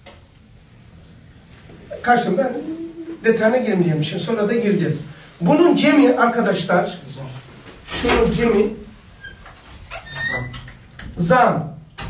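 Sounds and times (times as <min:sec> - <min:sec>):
marker squeaking on whiteboard: 0:09.2 - 0:10.8.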